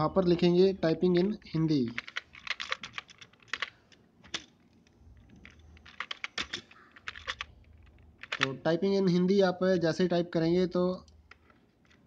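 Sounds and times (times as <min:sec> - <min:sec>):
computer keyboard keystrokes: 0:01.9 - 0:04.5, 0:05.2 - 0:08.6.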